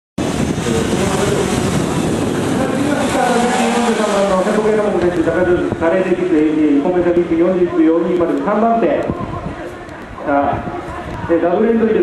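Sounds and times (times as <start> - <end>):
car engine revving hard: 0.2 - 6.2
man speaking: 2.5 - 9.2, 10.2 - 12.0.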